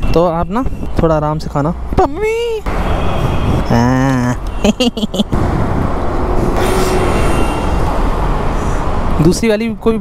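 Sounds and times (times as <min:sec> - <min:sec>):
road traffic rumble: 0:00.0 - 0:10.0
high multi-tone squeal: 0:06.2 - 0:08.8.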